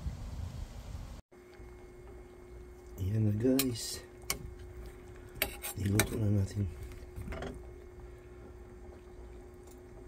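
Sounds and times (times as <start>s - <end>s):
faint steady hum: 0.0s - 10.0s
boiling water: 1.3s - 10.0s
spoon scraping steel pot: 5.3s - 6.4s.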